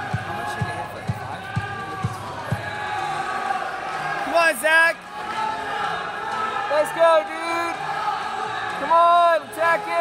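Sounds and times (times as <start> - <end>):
crowd murmur in a large hall: 0.0 - 10.0.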